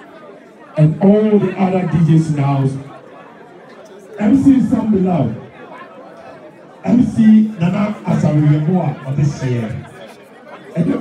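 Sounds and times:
low crowd chatter: 0:00.0 - 0:11.0
man talking into a microphone: 0:00.8 - 0:03.0, 0:04.2 - 0:05.5, 0:06.8 - 0:10.0, 0:10.7 - 0:11.0.

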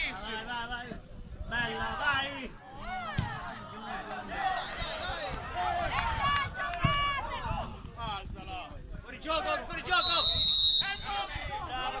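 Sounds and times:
players and spectators voices: 0:00.0 - 0:12.0
referee's whistle blast: 0:10.0 - 0:11.2.

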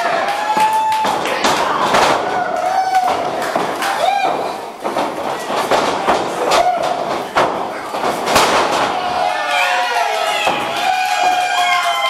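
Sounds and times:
people shouting and yelling: 0:00.0 - 0:12.0.

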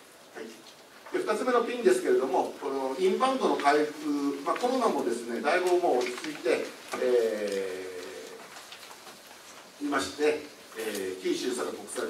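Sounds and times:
man speaking: 0:00.3 - 0:08.6, 0:09.8 - 0:12.0.

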